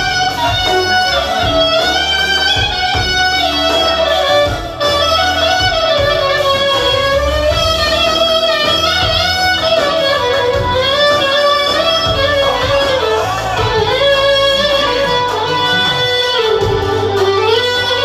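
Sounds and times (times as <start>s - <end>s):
clarinet melody with sliding notes: 0.0s - 18.0s
live band music: 0.0s - 18.0s.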